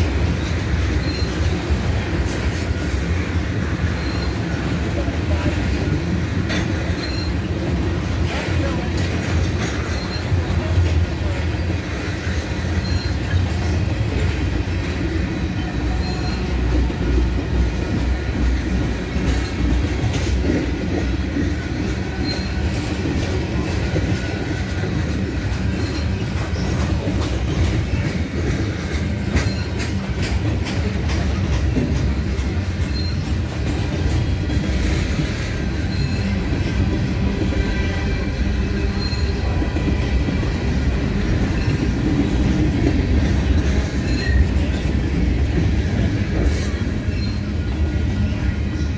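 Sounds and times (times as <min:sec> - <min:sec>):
train wheels rumbling on rail: 0:00.0 - 0:48.9
high wheel squeals: 0:00.3 - 0:05.0, 0:06.7 - 0:07.8, 0:09.6 - 0:10.7, 0:11.6 - 0:14.2, 0:21.3 - 0:30.0, 0:32.4 - 0:33.9, 0:34.6 - 0:42.8, 0:45.8 - 0:48.9
wheels clicking over rail joints: 0:15.9 - 0:37.1.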